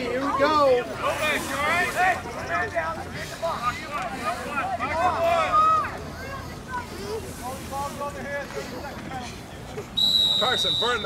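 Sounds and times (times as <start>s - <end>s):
voices calling out and chattering: 0.0s - 11.0s.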